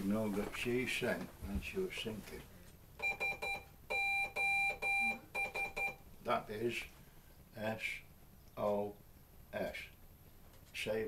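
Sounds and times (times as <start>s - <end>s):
morse code beeping: 3.0s - 6.0s.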